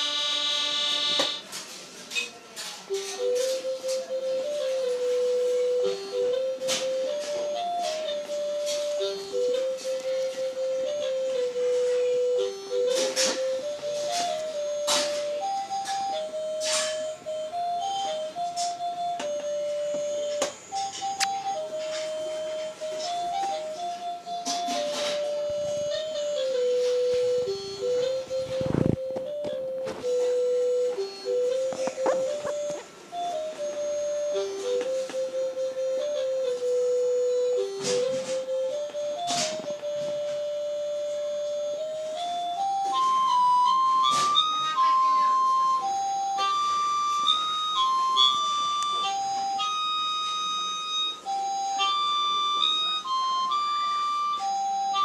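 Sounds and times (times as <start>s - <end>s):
toy keyboard melody: 0.0s - 55.0s.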